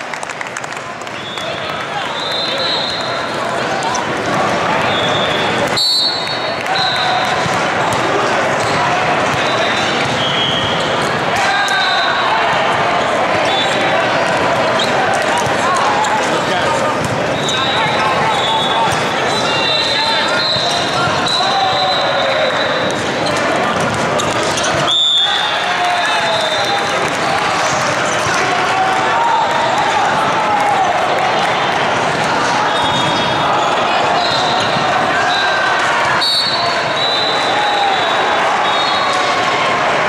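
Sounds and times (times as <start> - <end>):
echoing hubbub of voices: 0.0 - 40.0
sneakers squeaking on court: 14.4 - 24.9.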